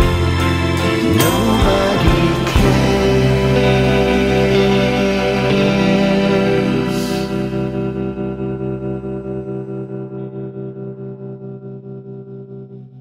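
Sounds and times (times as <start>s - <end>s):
cymbal crash: 0.0s - 4.5s
electric guitar chord with tremolo: 0.0s - 13.0s.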